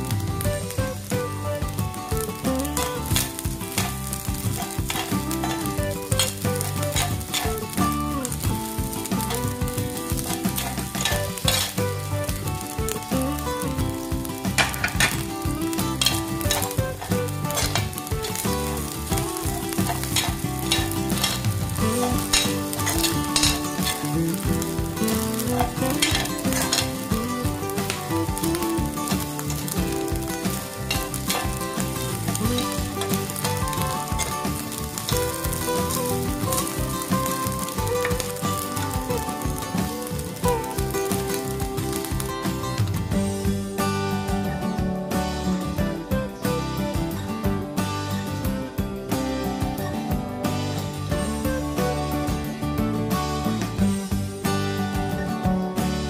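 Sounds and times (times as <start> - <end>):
rice sizzling in pan: 0.0 - 44.6
background music: 0.0 - 56.0
spatula scraping a pan: 3.1 - 8.4, 10.0 - 11.9.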